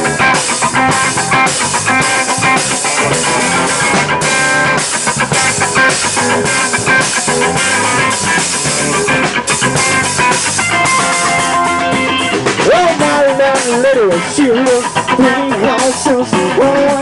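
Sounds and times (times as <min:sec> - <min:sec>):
bass guitar: 0:00.0 - 0:17.0
drum kit steady beat: 0:00.0 - 0:17.0
electric guitar strumming: 0:00.0 - 0:17.0.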